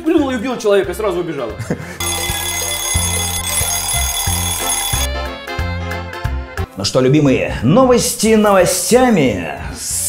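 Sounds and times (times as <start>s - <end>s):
alarm clock bell ringing: 2.0s - 5.1s.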